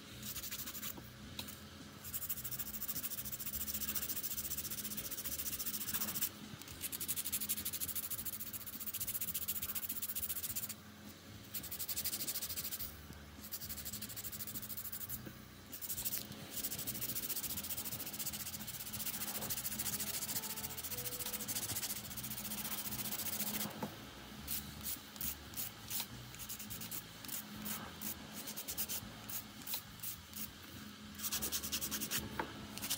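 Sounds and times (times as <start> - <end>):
nail file scratching: 0.2 - 10.8, 11.5 - 23.7, 24.5 - 30.5, 31.2 - 32.9.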